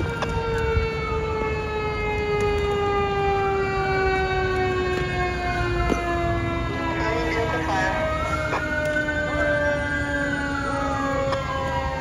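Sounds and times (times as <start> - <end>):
fire engine siren: 0.0 - 12.0
second siren rising and falling: 0.0 - 12.0.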